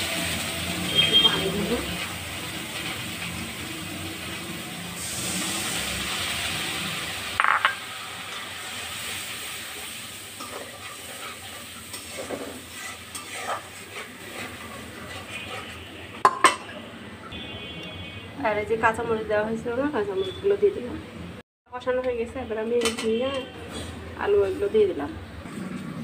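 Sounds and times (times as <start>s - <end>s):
liquid sizzling in hot pan: 0.0s - 15.9s
metal spoon scraping pan: 10.4s - 16.4s.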